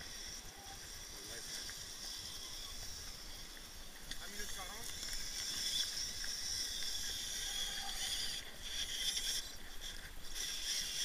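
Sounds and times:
rc car motor and gears whining: 0:00.0 - 0:11.0.

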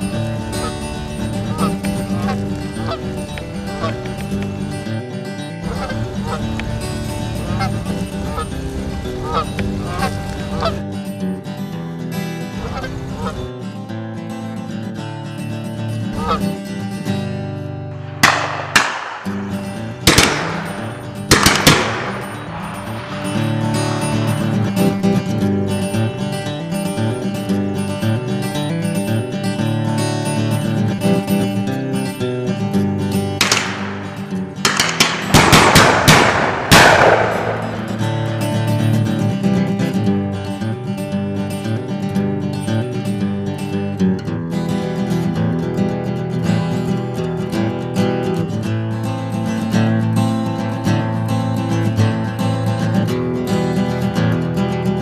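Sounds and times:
geese honking: 0:00.0 - 0:05.0, 0:05.6 - 0:10.8, 0:12.5 - 0:13.5, 0:16.2 - 0:16.6, 0:18.2 - 0:26.0
background music: 0:00.0 - 0:13.5, 0:15.6 - 0:41.9
shotgun shots: 0:18.0 - 0:24.5, 0:33.4 - 0:38.3.

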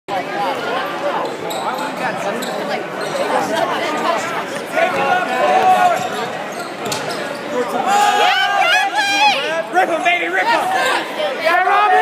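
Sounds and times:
echoing voices in a hall: 0:00.1 - 0:12.0.

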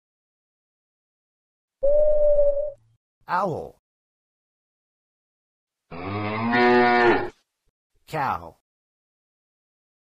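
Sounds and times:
cow mooing: 0:05.9 - 0:07.3.

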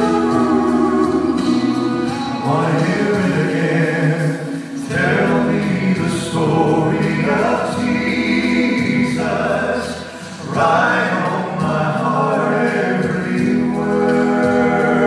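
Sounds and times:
male vocal trio singing a hymn: 0:00.0 - 0:15.0.

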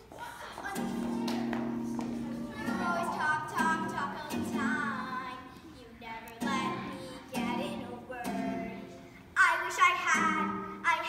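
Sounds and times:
child singing: 0:00.2 - 0:11.0.

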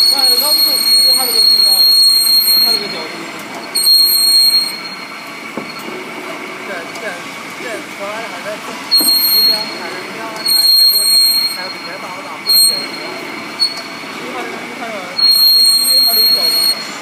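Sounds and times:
high-pitched cutting squeal: 0:00.0 - 0:06.0, 0:08.9 - 0:17.0
pipe cutting machine running: 0:00.0 - 0:17.0.

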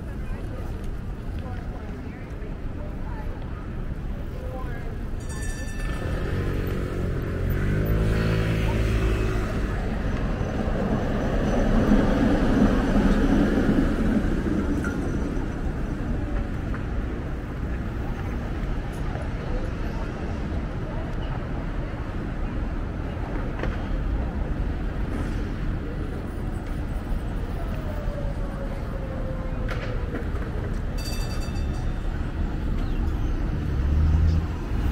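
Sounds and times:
traffic rumble: 0:00.0 - 0:34.9
vehicle passing: 0:06.0 - 0:14.4, 0:32.5 - 0:34.9.

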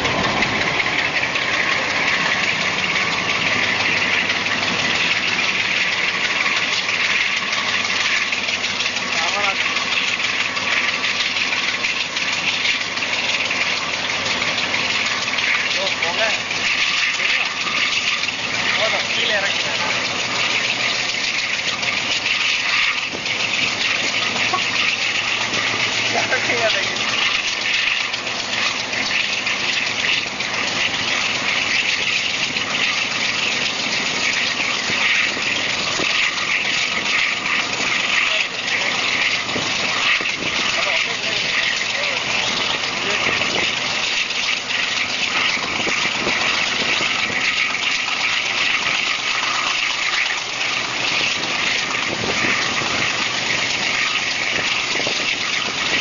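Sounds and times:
diesel locomotive engine running: 0:00.0 - 0:56.0
wheels on rail: 0:00.0 - 0:56.0.

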